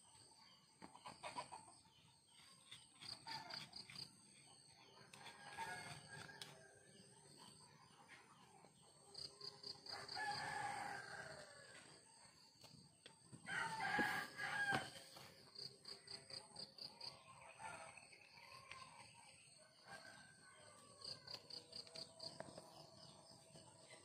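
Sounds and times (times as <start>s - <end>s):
rooster crowing: 9.9s - 11.6s, 13.5s - 15.0s.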